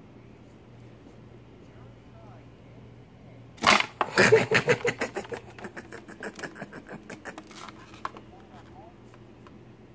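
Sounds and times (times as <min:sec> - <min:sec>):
plastic cup crinkling: 0:07.1 - 0:08.8.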